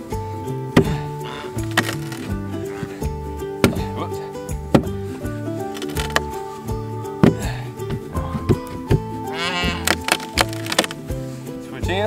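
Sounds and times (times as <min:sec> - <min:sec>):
background music with chords: 0:00.0 - 0:12.0
percussive hits: 0:00.7 - 0:02.3, 0:04.5 - 0:05.1.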